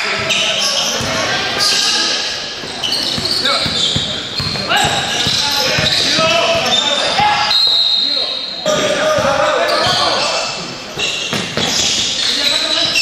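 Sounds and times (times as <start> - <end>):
players' voices and calls: 0.0 - 13.0
basketball bouncing on court: 0.1 - 1.4, 2.6 - 6.8, 11.0 - 12.1.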